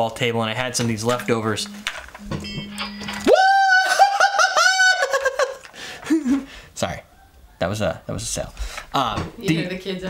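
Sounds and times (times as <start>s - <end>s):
man singing falsetto: 3.2s - 5.0s.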